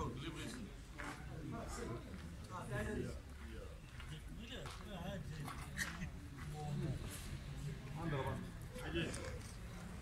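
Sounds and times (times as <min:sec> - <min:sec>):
men talking: 0:00.0 - 0:09.4.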